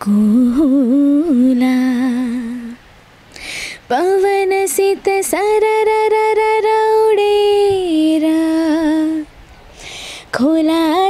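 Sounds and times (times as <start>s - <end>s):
woman singing unaccompanied: 0.0s - 2.9s, 3.6s - 9.4s, 10.2s - 11.0s
audible breath: 3.3s - 3.8s, 9.7s - 10.3s.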